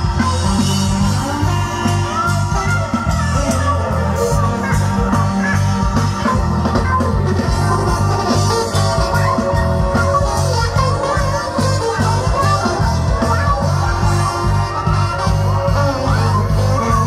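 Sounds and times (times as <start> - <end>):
electric guitar: 0.0 - 17.0
repeating bass line: 0.0 - 17.0.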